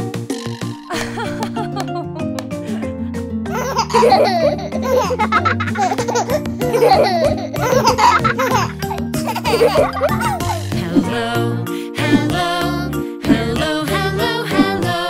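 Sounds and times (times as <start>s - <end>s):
children's song backing music: 0.0s - 15.0s
giggling and laughter: 0.9s - 2.9s, 3.6s - 10.6s.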